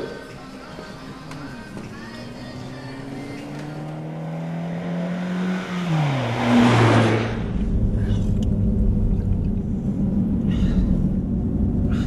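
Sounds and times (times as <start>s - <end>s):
car engine rushing past: 2.2s - 12.0s
low steady engine rumble: 7.3s - 12.0s.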